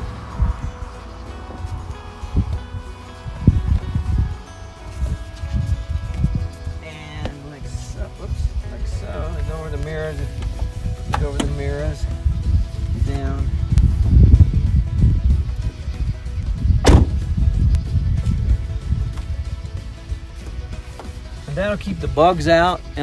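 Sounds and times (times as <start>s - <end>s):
faint background music: 0.0s - 23.0s
wind rumble on microphone: 0.0s - 23.0s
sharp knock: 16.8s - 17.2s.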